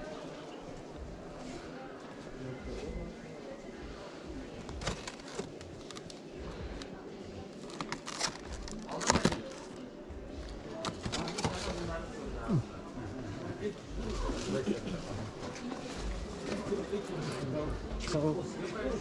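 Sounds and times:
indistinct background voices: 0.0s - 19.0s
plastic item crackling: 4.6s - 9.8s, 10.7s - 11.8s.

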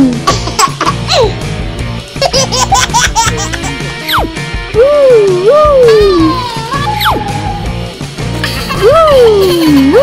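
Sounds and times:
background music: 0.0s - 10.0s
giggling laughter: 2.2s - 4.2s.

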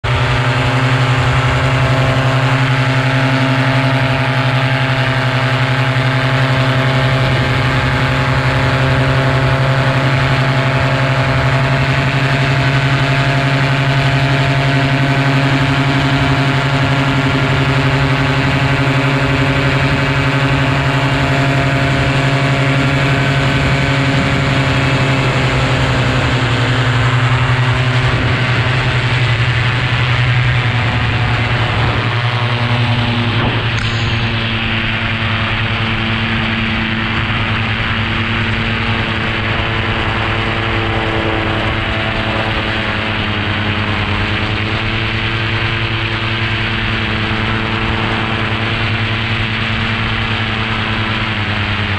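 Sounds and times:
paramotor engine droning: 0.0s - 51.9s.

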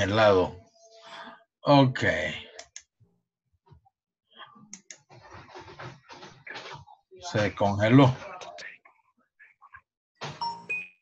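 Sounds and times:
computer mouse clicking: 4.7s - 6.3s.

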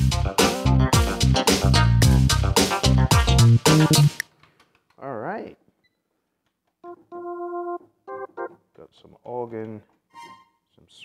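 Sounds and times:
organ notes: 6.8s - 8.6s.

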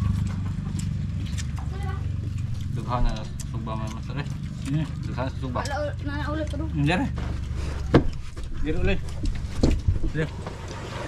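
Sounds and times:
voices: 0.0s - 9.3s
low engine hum: 0.0s - 11.0s.

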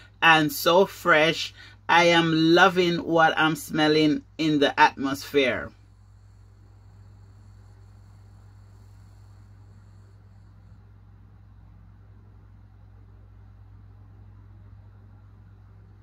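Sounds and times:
low hum: 1.5s - 16.0s
faint hiss: 5.7s - 11.0s.

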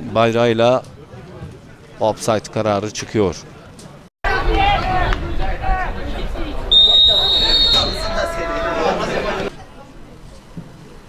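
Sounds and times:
players and spectators voices: 0.0s - 11.0s
referee's whistle: 6.7s - 8.2s.

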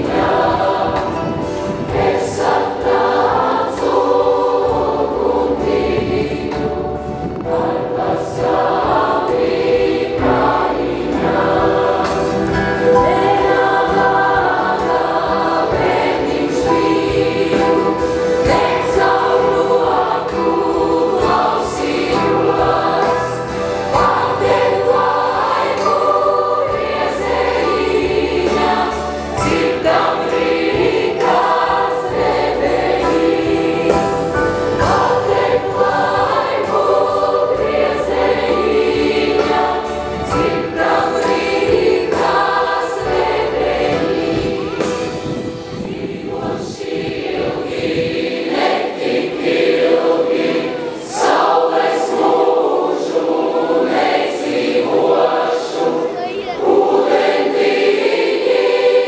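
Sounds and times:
youth choir singing: 0.0s - 59.0s.

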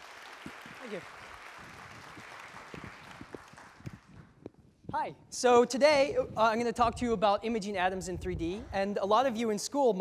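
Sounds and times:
audience applause: 0.0s - 4.2s.

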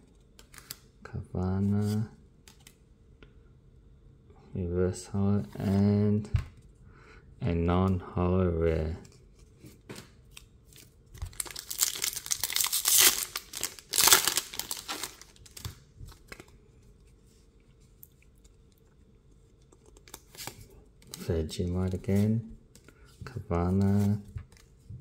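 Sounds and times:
foil wrapper tearing and crinkling: 11.2s - 15.8s.

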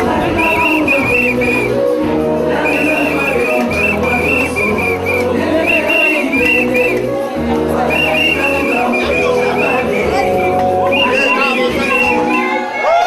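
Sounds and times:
loud dance music: 0.0s - 12.9s
pea whistle trilled blasts: 7.9s - 12.9s.

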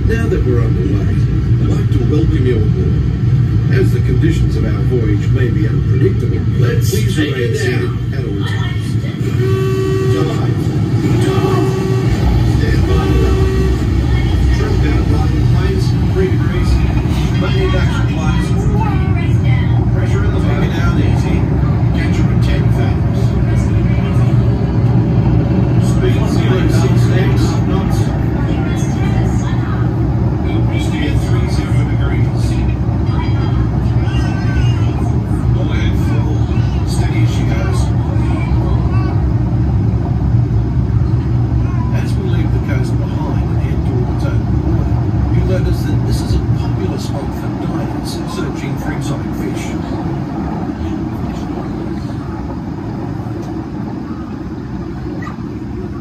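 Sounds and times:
passengers' voices: 0.0s - 56.0s.

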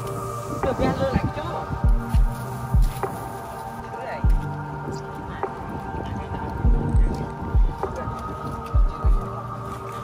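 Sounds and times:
heartbeat thumps: 0.6s - 3.2s, 4.2s - 9.4s.

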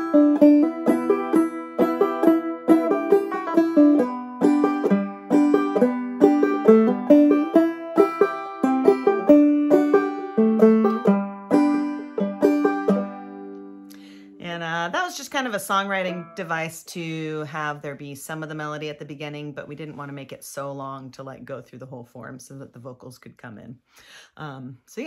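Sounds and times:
clawhammer banjo playing: 0.0s - 16.7s.

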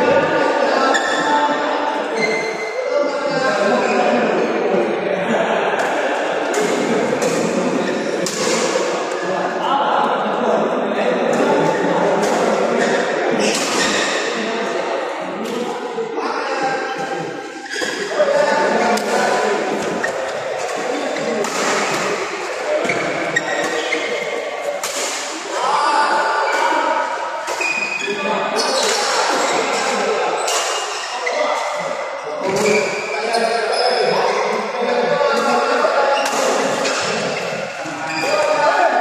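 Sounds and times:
chatter of voices: 0.0s - 39.0s
rackets hitting shuttlecock: 5.8s - 9.2s, 19.0s - 25.6s.

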